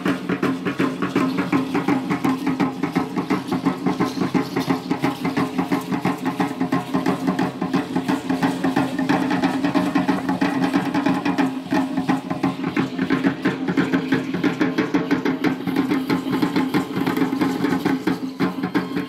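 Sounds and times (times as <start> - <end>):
drums beaten in fast rhythm: 0.0 - 19.0
seed-pod ankle rattles shaking: 0.0 - 19.0.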